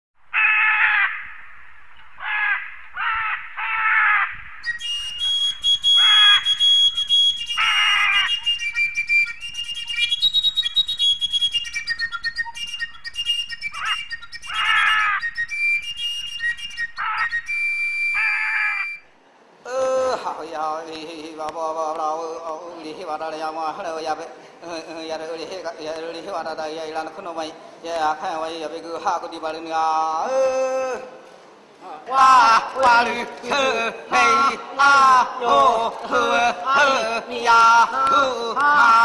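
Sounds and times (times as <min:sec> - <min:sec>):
squawking bird calls: 0:00.3 - 0:19.0
high whistled bird notes: 0:04.0 - 0:19.1.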